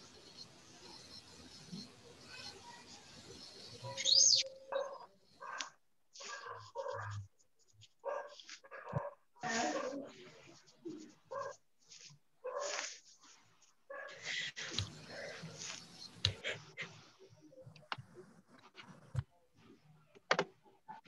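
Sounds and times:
dog barking: 4.6 - 7.3, 8.0 - 10.1, 11.3 - 11.6, 12.4 - 12.9, 13.9 - 14.3.

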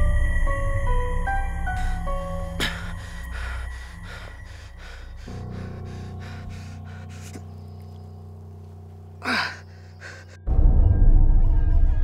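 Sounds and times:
low sustained drone: 0.0 - 11.5.

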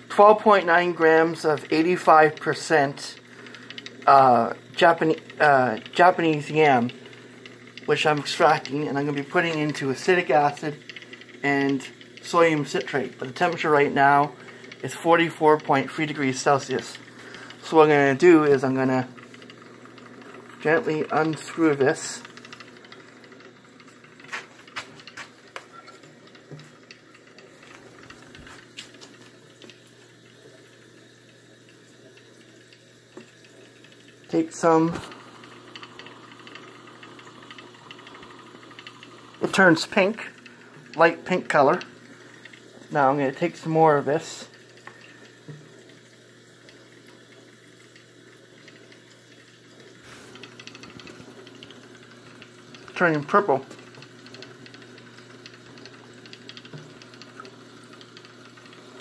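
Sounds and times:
steady low hum: 0.0 - 59.0
sharp clicks: 3.2 - 29.9, 50.3 - 59.0.

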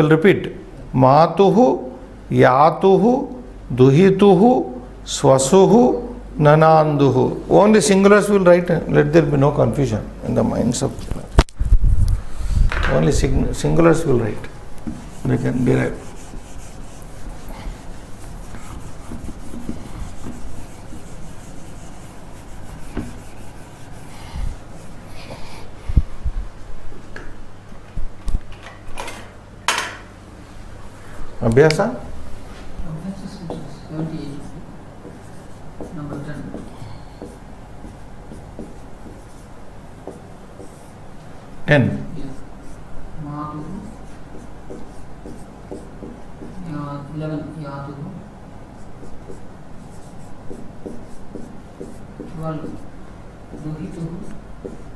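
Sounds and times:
man speaking: 0.0 - 11.3, 12.9 - 14.6, 15.2 - 16.2
eraser rubbing on whiteboard: 14.8 - 25.4, 33.5 - 41.0, 43.6 - 46.6, 48.8 - 52.9, 53.5 - 54.9
marker tip tapping board: 44.3 - 46.6, 50.5 - 52.8, 53.5 - 54.9.

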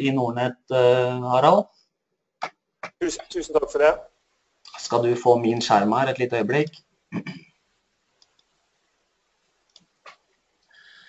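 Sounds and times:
computer mouse clicks: 9.7 - 10.2.

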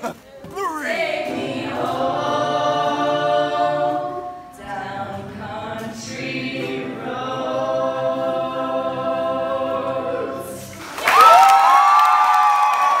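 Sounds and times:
ukulele: 0.0 - 11.3
women singing in harmony: 0.4 - 10.8
people clapping: 10.8 - 13.0
cheering with high whoops: 10.9 - 13.0.

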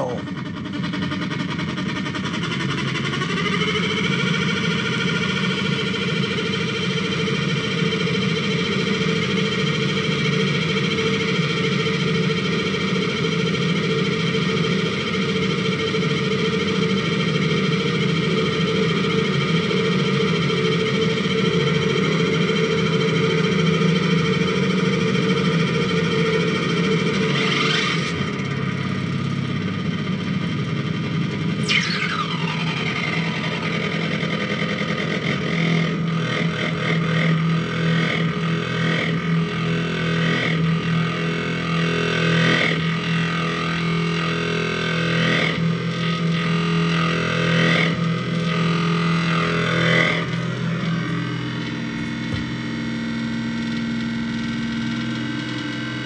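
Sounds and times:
low hum: 0.0 - 6.8, 48.0 - 54.6
distorted electronic drone: 0.0 - 44.7, 45.6 - 56.0
electronic pitch sweep: 31.6 - 34.1, 49.3 - 53.2.

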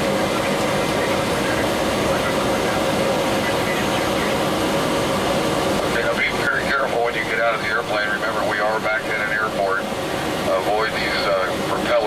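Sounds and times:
propeller airplane engine drone: 0.0 - 12.0.

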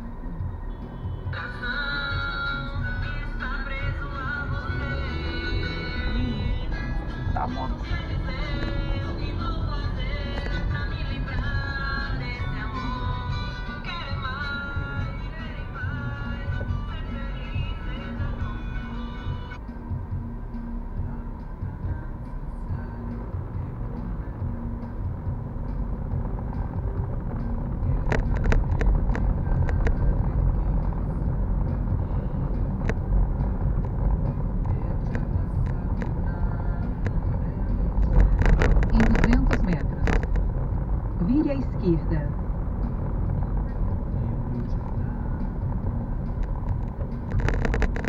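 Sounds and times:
car engine and tyre rumble: 0.0 - 48.0.

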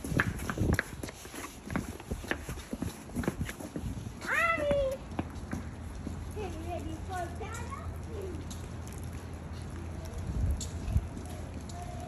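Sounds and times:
footsteps on wooden boards: 0.0 - 6.7
child calling out: 4.2 - 5.0.

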